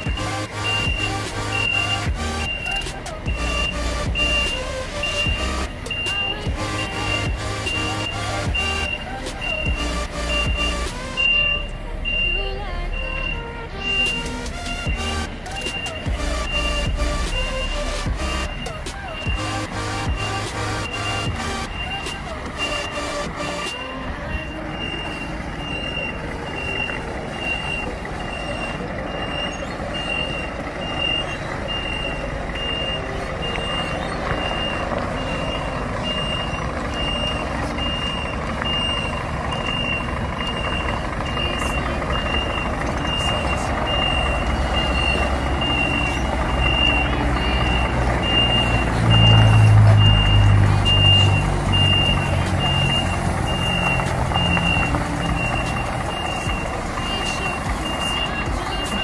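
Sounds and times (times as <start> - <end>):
diesel truck engine running: 0.0 - 59.0
reversing alarm beeping: 0.0 - 59.0.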